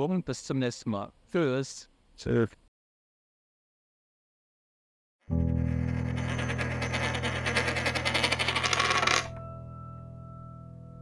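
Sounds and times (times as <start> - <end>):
held low chord: 9.3 - 11.0.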